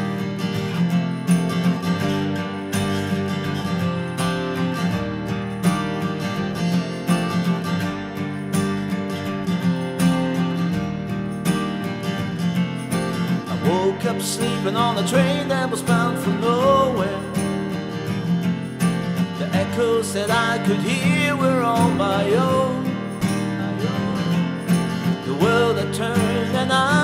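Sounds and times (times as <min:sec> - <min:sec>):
acoustic guitar strumming: 0:00.0 - 0:27.0.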